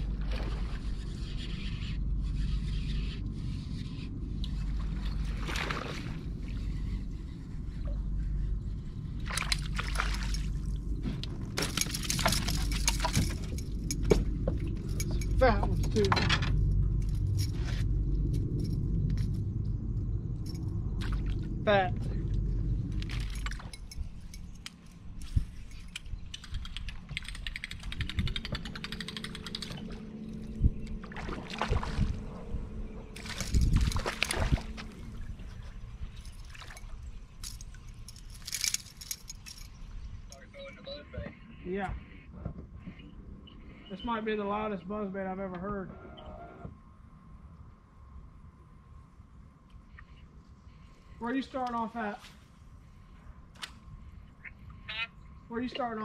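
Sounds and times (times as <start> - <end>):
low rumbling noise: 0.0 - 40.4
steady low hum: 0.0 - 56.0
fishing lure blade clacking and squeaking: 11.7 - 17.6, 23.0 - 30.5
scattered clicks: 22.9 - 31.0.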